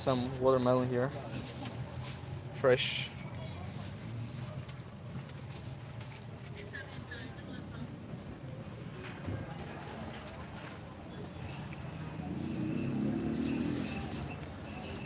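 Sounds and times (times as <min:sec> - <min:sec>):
faint distant voices: 0:00.0 - 0:15.0.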